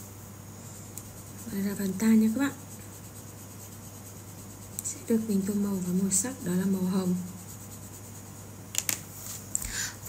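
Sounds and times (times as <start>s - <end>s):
pencil scratching on paper: 0.6s - 8.5s.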